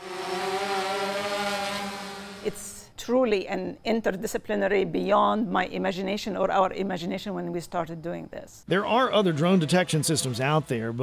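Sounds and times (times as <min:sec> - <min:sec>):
drone propellers buzzing: 0:00.0 - 0:02.7, 0:08.8 - 0:11.0.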